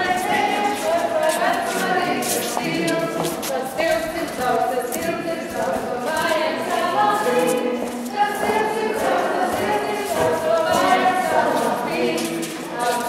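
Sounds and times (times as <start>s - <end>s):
group of voices singing: 0.0s - 13.0s.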